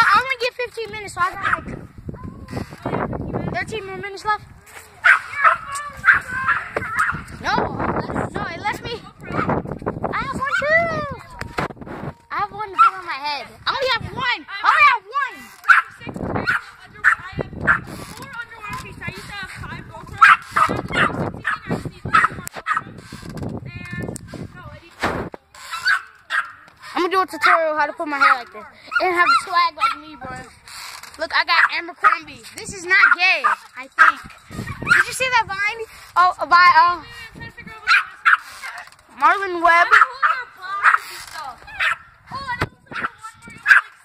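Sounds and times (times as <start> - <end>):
dog barking: 1.4 - 1.8, 5.0 - 7.2, 12.8 - 13.0, 15.7 - 17.9, 20.2 - 22.8, 25.8 - 26.6, 28.2 - 30.0, 31.6 - 32.2, 33.0 - 35.0, 37.9 - 38.4, 39.9 - 41.0, 41.8 - 42.0, 43.7 - 43.9
dog yelping: 5.0 - 7.3, 20.2 - 22.9, 25.7 - 26.6, 28.2 - 30.0, 33.0 - 35.1, 37.9 - 38.8, 39.8 - 42.1.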